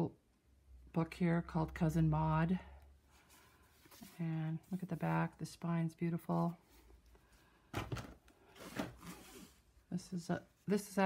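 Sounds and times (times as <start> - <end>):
hands rustling books: 3.0 - 5.6, 6.2 - 9.8
book sliding on cardboard: 8.5 - 9.6.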